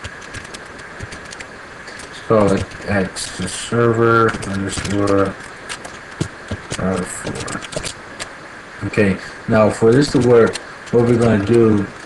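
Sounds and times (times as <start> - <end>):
computer keyboard keystrokes: 0.0 - 1.5, 4.3 - 8.0
background hum: 0.0 - 12.0.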